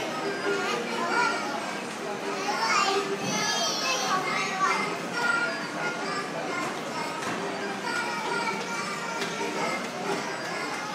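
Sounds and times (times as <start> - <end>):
children calling and chattering: 0.0 - 10.9.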